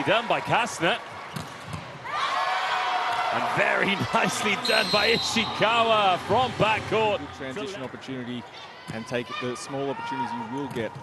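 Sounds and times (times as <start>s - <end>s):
arena crowd cheering: 0.0s - 1.3s, 1.9s - 11.0s.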